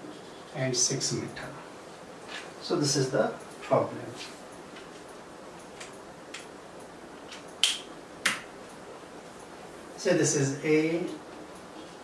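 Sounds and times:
room hiss: 0:00.0 - 0:12.0
sharp clicks: 0:05.6 - 0:08.5.

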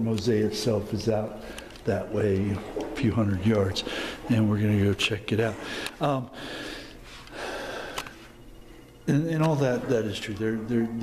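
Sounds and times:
man breathing in: 0:03.8 - 0:04.3, 0:05.6 - 0:08.3.

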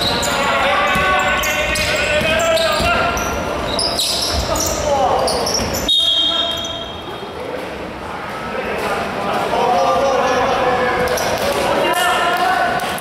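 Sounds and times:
players calling: 0:00.0 - 0:07.4
sneakers squeaking: 0:00.0 - 0:07.5
basketball bouncing on wooden court: 0:00.8 - 0:03.4
referee's whistle: 0:05.8 - 0:07.1.

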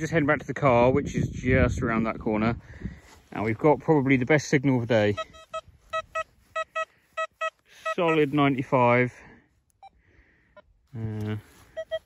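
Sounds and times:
metal detector beeps: 0:04.9 - 0:08.7, 0:09.7 - 0:10.7, 0:11.7 - 0:12.0.

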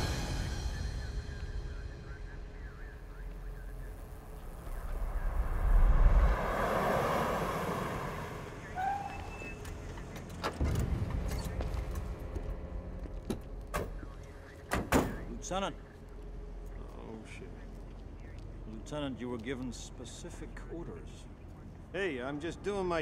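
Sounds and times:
car engine and tyre rumble: 0:02.7 - 0:14.5.

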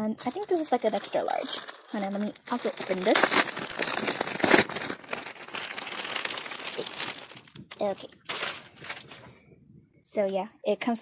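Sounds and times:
plastic packaging crinkling: 0:00.0 - 0:09.4.

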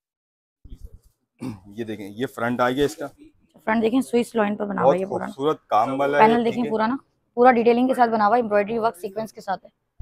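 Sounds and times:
man speaking: 0:01.4 - 0:03.3, 0:04.8 - 0:06.9.

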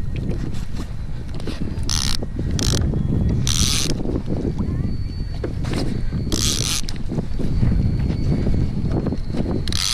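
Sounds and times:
wind rumble on microphone: 0:00.0 - 0:09.9
fishing line running off reel: 0:01.3 - 0:04.1, 0:06.3 - 0:07.5, 0:08.9 - 0:09.9.

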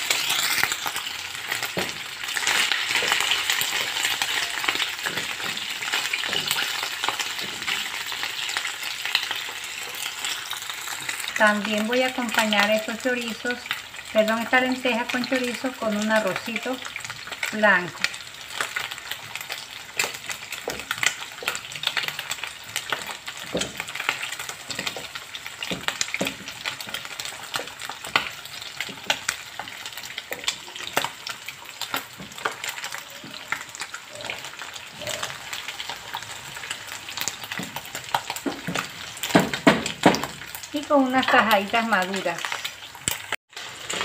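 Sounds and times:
food sizzling in hot oil: 0:00.0 - 0:44.0
wooden spoon scraping a pan: 0:02.4 - 0:08.6, 0:43.6 - 0:44.0.

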